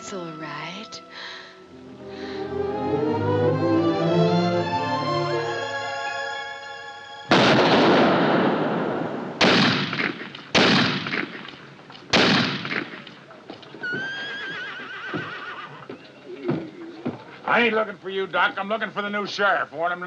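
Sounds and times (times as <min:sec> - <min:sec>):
echoing revolver shots: 0:07.3 - 0:13.2
horse whinnying: 0:13.8 - 0:16.0.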